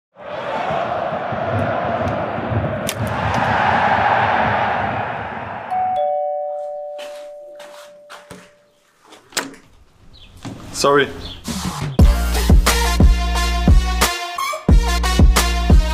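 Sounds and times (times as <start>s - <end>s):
stadium crowd noise: 0.2s - 5.8s
two-note doorbell chime: 5.7s - 8.4s.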